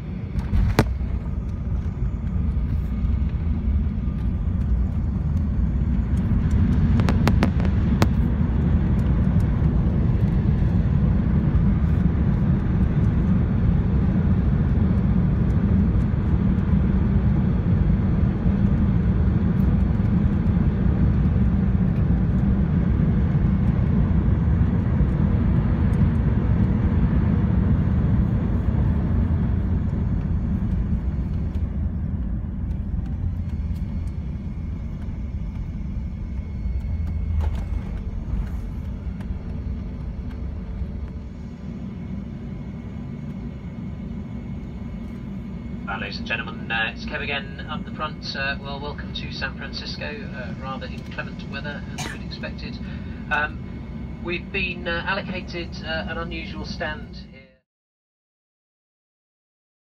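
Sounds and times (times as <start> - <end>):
rumble of wheels and engines: 0.0 - 57.6.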